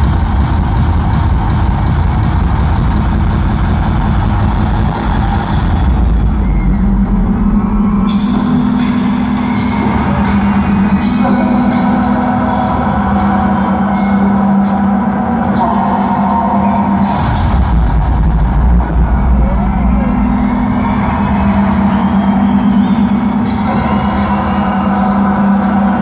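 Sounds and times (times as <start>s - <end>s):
deep bass swell: 0.0s - 26.0s.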